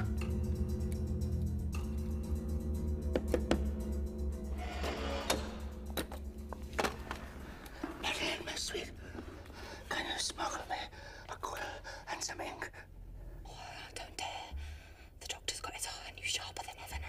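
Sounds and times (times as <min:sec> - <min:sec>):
man and woman whispering: 0:07.9 - 0:09.2, 0:09.8 - 0:14.6, 0:15.2 - 0:17.0.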